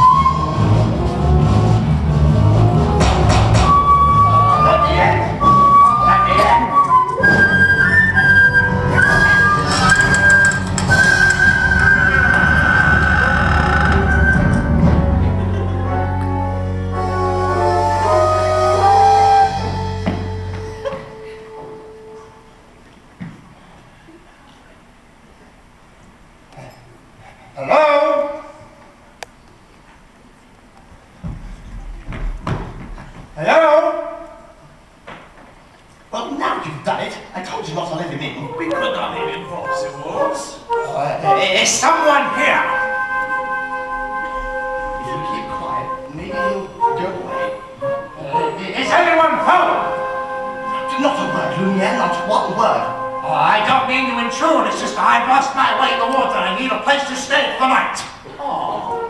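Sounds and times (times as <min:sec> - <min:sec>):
loud rising cry: 0:08.6 - 0:15.2
footfalls thudding on stage floor: 0:31.2 - 0:33.4
slow melody of high notes: 0:42.2 - 0:54.3.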